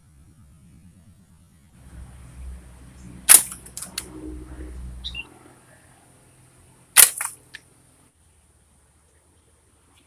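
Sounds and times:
shot striking plastic cups: 7.0s - 7.4s.

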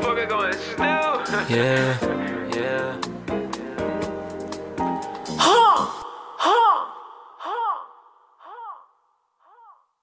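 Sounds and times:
echoing vocal ad-lib call: 5.4s - 10.0s.

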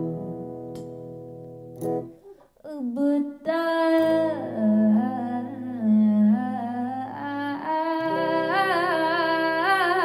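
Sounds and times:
woman humming and singing: 2.6s - 10.0s.

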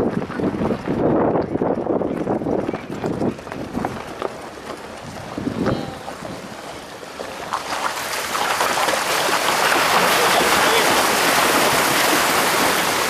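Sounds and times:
vehicle rolling over stones: 0.0s - 13.0s
water splashing around tyres: 3.3s - 13.0s.

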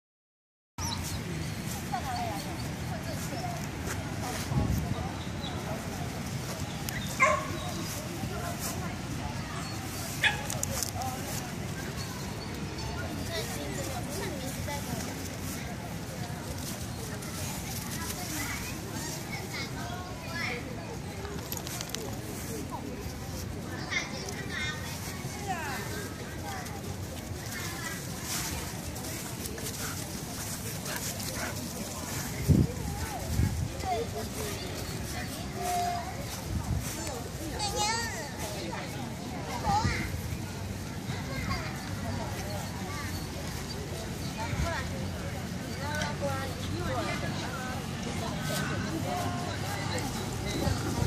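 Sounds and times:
dog barking: 7.2s - 7.6s
dogs playing: 26.6s - 36.5s.

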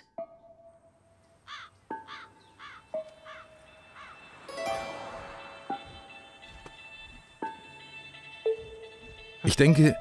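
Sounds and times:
soft background music: 0.0s - 10.0s
crows cawing: 1.4s - 4.4s.

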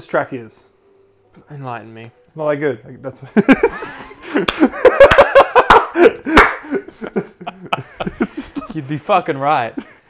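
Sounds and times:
men laughing: 3.2s - 9.0s, 9.7s - 10.0s
hand claps: 4.4s - 5.4s, 6.2s - 6.7s.

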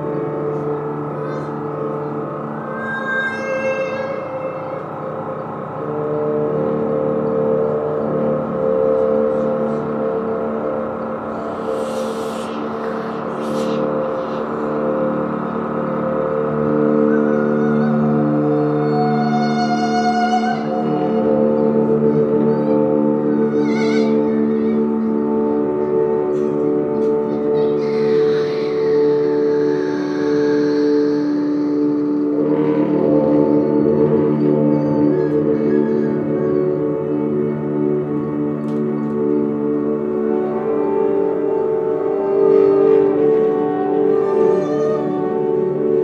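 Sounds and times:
electronic drone tones: 0.0s - 46.0s.

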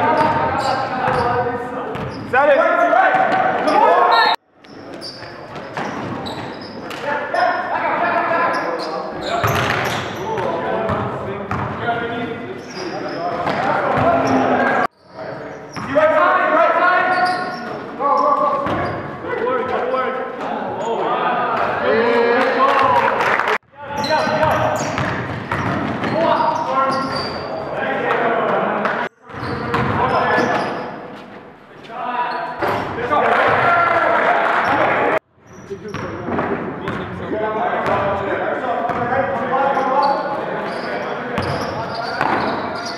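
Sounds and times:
echoing players' voices: 6.8s - 25.3s, 31.8s - 35.2s
basketball bouncing on hardwood: 25.0s - 26.2s.

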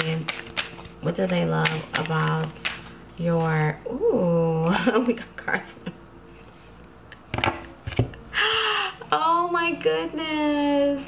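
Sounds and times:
cards clicking and tapping: 0.0s - 2.9s.

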